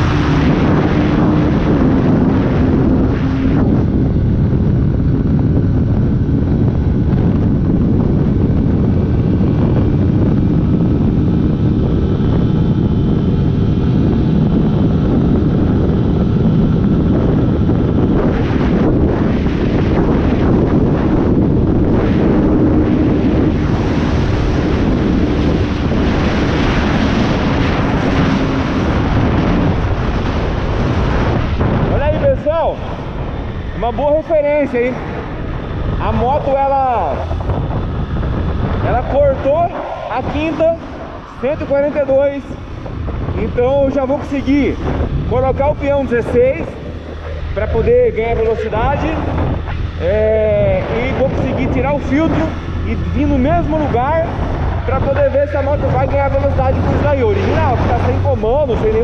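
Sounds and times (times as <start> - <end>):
motorcycle engine at full revs: 0.0 - 31.8
wind noise on microphone: 0.0 - 59.0.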